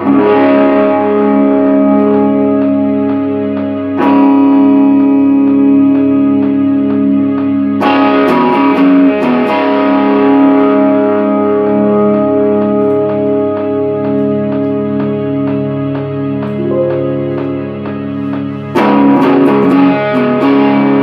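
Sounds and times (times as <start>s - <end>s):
distorted electric guitar: 0.0s - 21.0s
steady beat: 1.1s - 20.8s.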